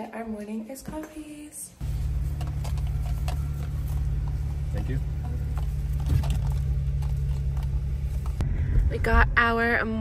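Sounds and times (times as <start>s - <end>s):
car driving low rumble: 1.8s - 10.0s.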